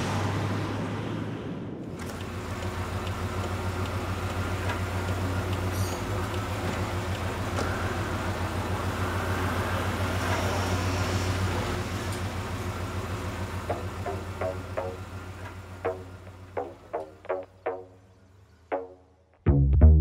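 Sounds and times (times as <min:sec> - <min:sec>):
van engine idling: 0:02.0 - 0:10.0, 0:11.4 - 0:18.7
short musical notes: 0:13.7 - 0:15.0, 0:15.9 - 0:17.9.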